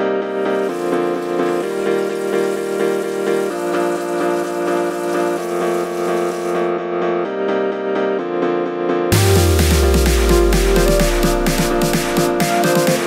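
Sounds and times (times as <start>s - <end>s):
music with pulsing beat: 0.0s - 6.7s, 9.1s - 13.0s
faucet water running into sink: 0.5s - 6.6s.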